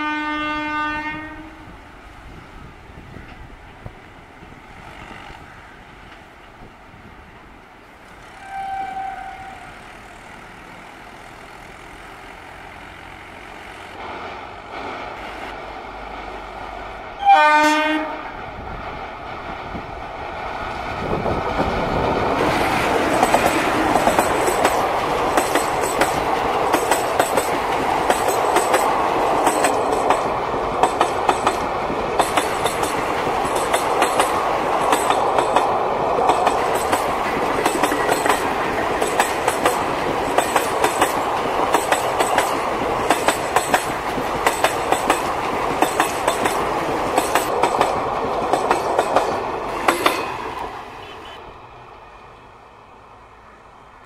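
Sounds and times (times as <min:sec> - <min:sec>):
train rolling noise: 0:00.0 - 0:54.0
wheels clicking over rail joints: 0:19.7 - 0:50.7.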